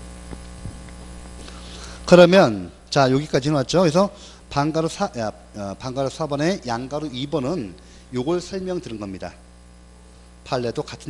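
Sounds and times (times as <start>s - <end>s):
faint background hiss: 0.0s - 11.0s
low electrical hum: 0.0s - 11.0s.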